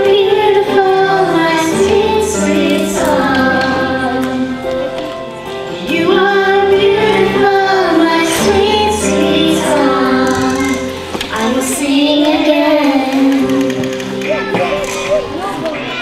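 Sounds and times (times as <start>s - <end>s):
girl singing into a microphone: 0.0s - 4.9s, 5.7s - 14.8s
held musical accompaniment: 0.0s - 16.0s.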